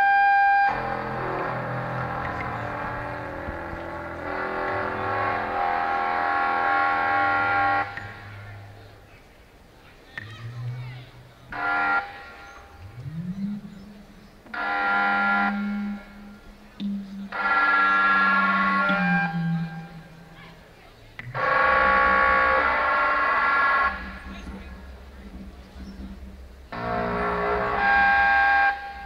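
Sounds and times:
experimental synthesizer music: 0.4s - 9.1s, 10.1s - 29.0s
low sliding drone: 0.6s - 9.0s, 11.5s - 29.0s.

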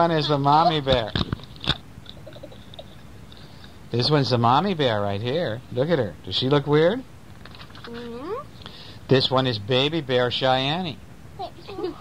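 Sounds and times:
faint scattered small sounds: 0.0s - 12.0s.

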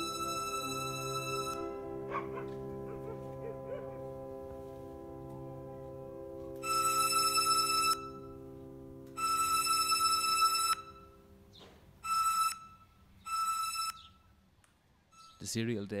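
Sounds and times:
low sustained synth chord: 0.0s - 9.5s.

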